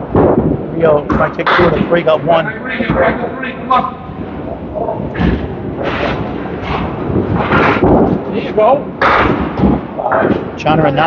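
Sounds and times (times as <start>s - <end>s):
bowling balls rolling on lanes: 0.0s - 11.0s
bowling pins crashing: 4.4s - 10.6s.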